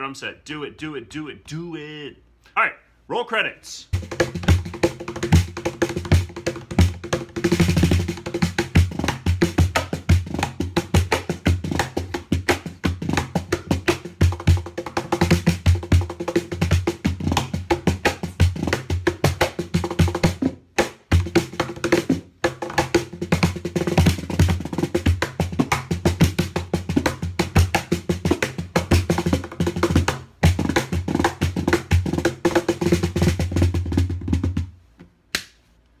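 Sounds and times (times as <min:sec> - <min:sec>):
cajon played by hand: 0:04.0 - 0:34.7.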